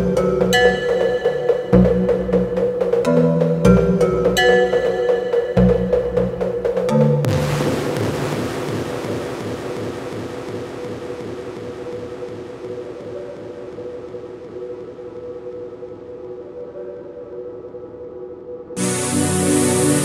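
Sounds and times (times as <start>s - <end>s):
noise sweep: 7.2s - 16.6s.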